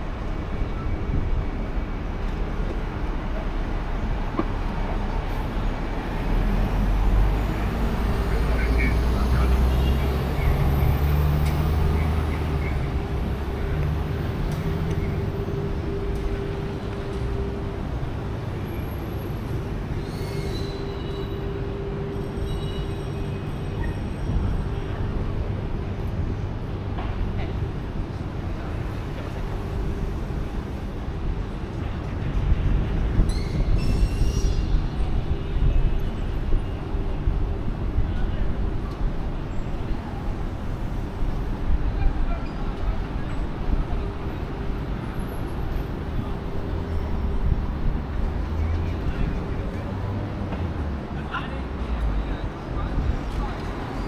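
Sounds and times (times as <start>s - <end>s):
passing vehicles rumbling: 0.0s - 54.0s.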